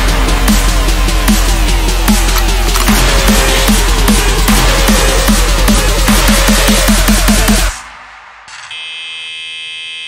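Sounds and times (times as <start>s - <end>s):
electronic dance track: 0.0s - 8.5s.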